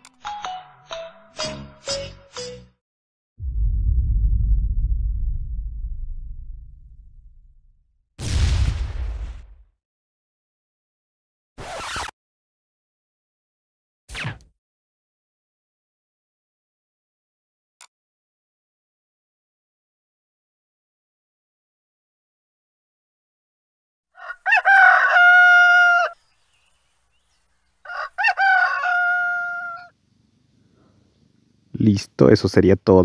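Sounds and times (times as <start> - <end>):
rooster crowing: 24.2 - 26.2, 27.8 - 30.0.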